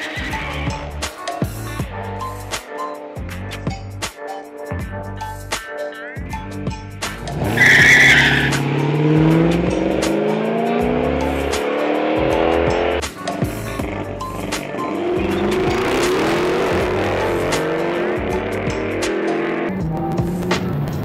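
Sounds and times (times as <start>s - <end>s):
tire squeal: 0.0s - 0.6s, 7.4s - 8.8s
car engine revving through gears: 7.2s - 21.0s.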